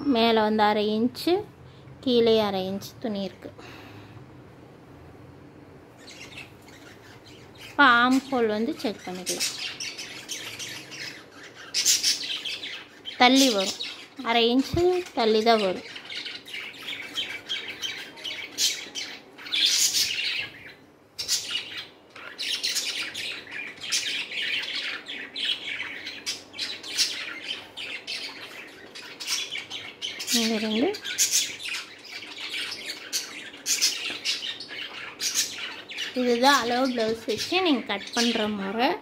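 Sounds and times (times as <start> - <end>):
birds chirping: 0.0 - 39.0.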